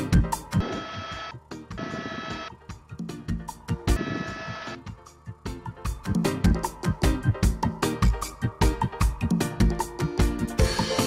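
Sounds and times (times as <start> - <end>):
music with drum beat: 0.0 - 1.8, 2.4 - 11.0
sustained buzzy chord: 0.0 - 8.8.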